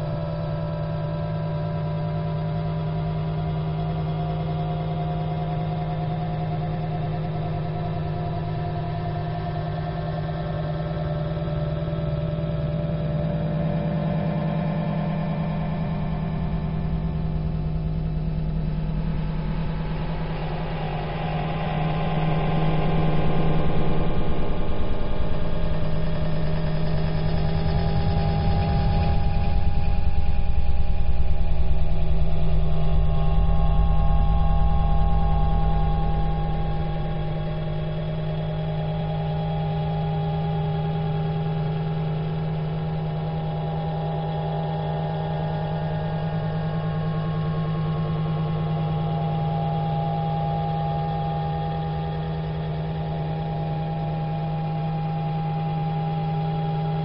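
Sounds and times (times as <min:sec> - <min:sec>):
steady low drone: 0:00.0 - 0:57.0
deep rumble: 0:15.5 - 0:40.8.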